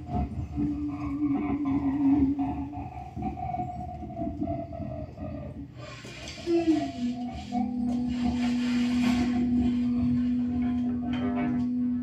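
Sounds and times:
voice holding notes: 0:00.0 - 0:03.3, 0:06.3 - 0:12.0
busy low drums: 0:00.0 - 0:12.0.

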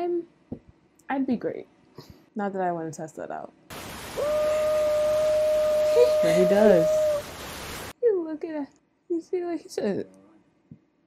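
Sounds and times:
waterfall rushing: 0:03.7 - 0:07.9
man yelling: 0:04.4 - 0:07.2.

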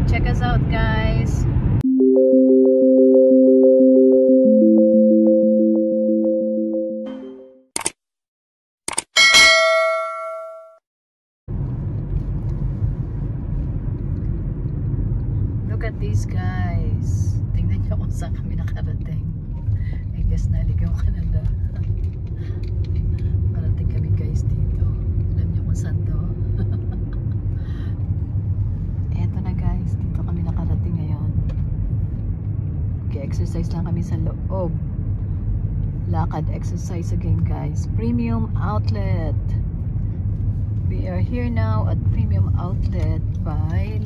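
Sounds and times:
bell ding: 0:09.2 - 0:10.8
car driving rumble: 0:11.5 - 0:44.0.

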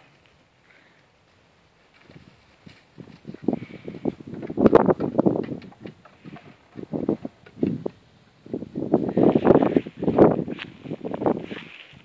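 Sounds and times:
footsteps on ground: 0:01.2 - 0:05.4, 0:09.1 - 0:12.0.

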